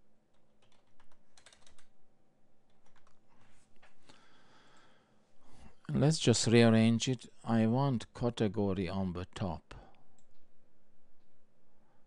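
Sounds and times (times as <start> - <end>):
computer keyboard typing: 0.3 - 1.9, 2.7 - 3.2.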